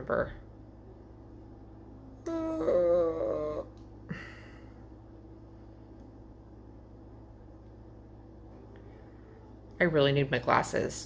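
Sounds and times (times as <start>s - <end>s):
wavering vocal sound: 2.2s - 3.8s.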